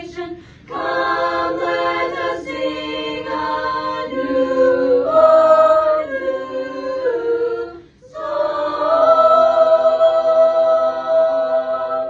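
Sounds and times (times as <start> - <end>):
choir singing a cappella: 0.0 - 12.0.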